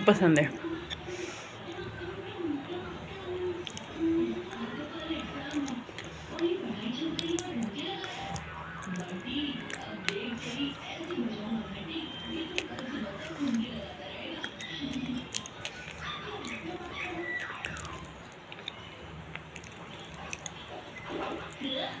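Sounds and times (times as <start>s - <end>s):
voices: 0.0s - 22.0s
person chewing food: 0.6s - 1.9s, 2.5s - 22.0s
wet mouth clicks: 7.1s - 10.3s, 14.3s - 21.6s.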